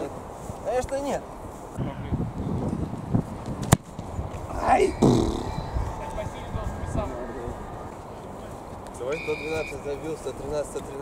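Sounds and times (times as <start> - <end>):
low outdoor noise: 0.0 - 11.0.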